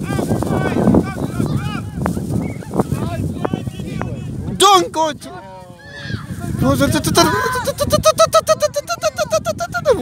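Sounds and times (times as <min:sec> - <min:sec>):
wind rumbling on microphone: 0:00.0 - 0:10.0
children shouting: 0:05.7 - 0:06.4.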